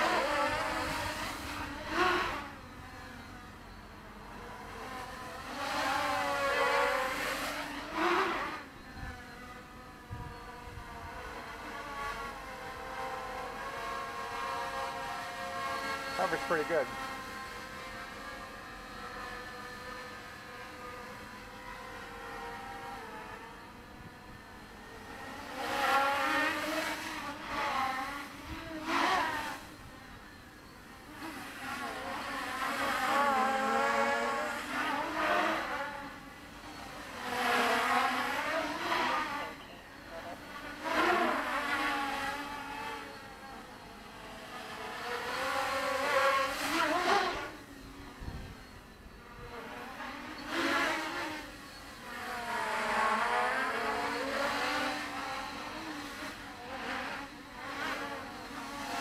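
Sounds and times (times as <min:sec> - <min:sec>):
quadcopter motors whining: 0:00.0 - 0:59.0.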